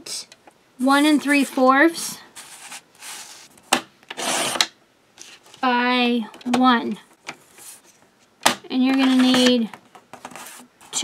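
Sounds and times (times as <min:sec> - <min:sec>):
trimmer blade cutting paper: 0:04.2 - 0:04.6.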